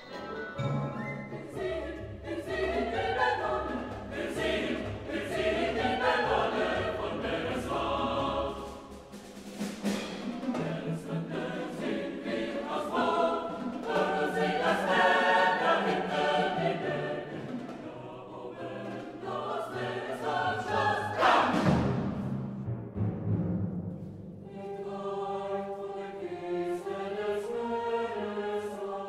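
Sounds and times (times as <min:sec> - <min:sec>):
chorus singing with orchestra: 0:00.0 - 0:29.0
percussion crash: 0:08.9 - 0:10.8, 0:21.2 - 0:24.4.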